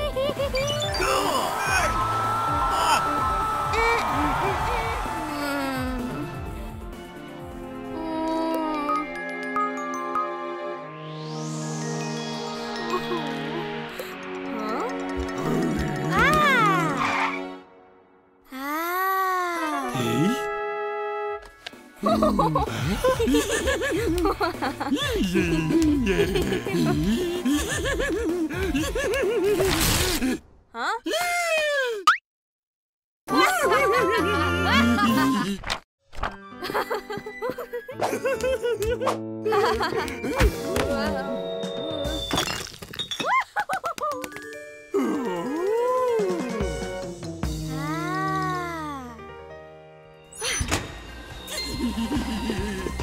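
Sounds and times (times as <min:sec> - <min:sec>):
cartoon background music: 0:00.0 - 0:29.4, 0:33.3 - 0:35.4, 0:36.1 - 0:42.3, 0:44.1 - 0:53.0
high cartoon voice: 0:16.1 - 0:17.0
glass bottles shattering: 0:42.2 - 0:43.5.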